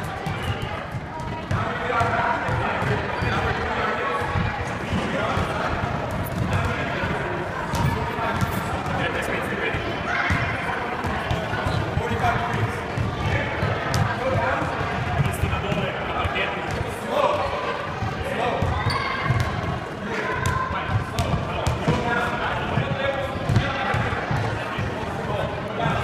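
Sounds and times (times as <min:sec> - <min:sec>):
voices echoing in hall: 0:00.0 - 0:26.0.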